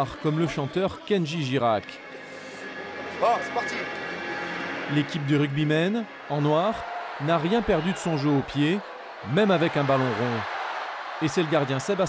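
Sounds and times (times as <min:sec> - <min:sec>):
stadium background noise: 0:03.0 - 0:12.0.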